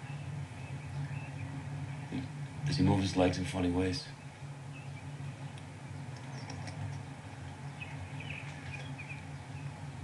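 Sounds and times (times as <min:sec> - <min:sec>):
small birds chirping: 0:00.0 - 0:10.0
steady low hum: 0:00.0 - 0:10.0.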